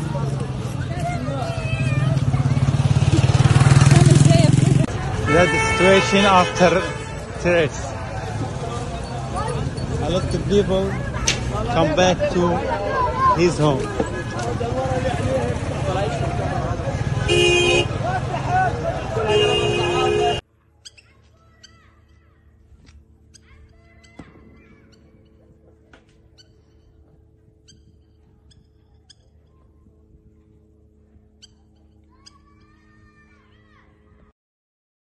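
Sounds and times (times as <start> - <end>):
people's voices: 0.0 - 20.4
vehicle engine droning: 0.0 - 20.4
vehicle horn honking: 5.0 - 7.8, 17.0 - 18.3, 19.1 - 20.4.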